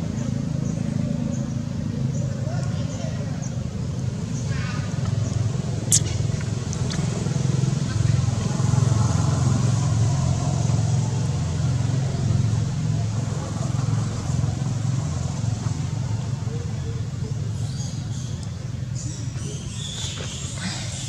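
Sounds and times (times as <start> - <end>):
motor engine rumbling: 0.0 - 21.0.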